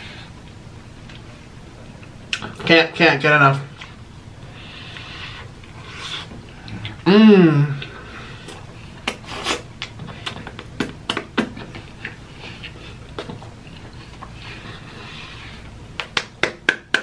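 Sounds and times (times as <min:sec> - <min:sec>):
lip smacks: 0:08.5 - 0:14.4.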